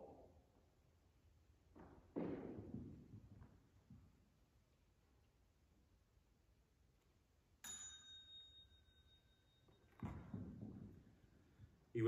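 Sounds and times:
light metallic ding: 7.6s - 9.6s.

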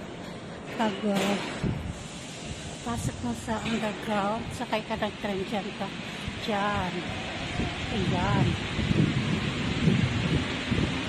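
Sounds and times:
rushing rumbling noise: 0.0s - 11.0s.

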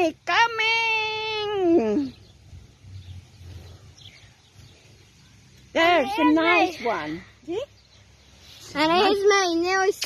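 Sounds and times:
faint bird chirp: 0.0s - 10.0s
low rumble: 2.1s - 5.4s.

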